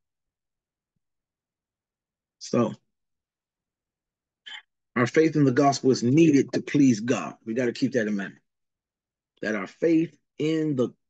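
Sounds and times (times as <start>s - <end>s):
man speaking: 2.4s - 2.8s, 5.0s - 8.4s, 9.4s - 11.0s.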